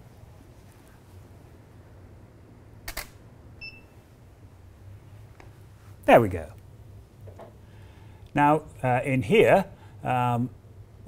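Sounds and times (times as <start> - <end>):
camera shutter clicks: 2.9 - 3.2.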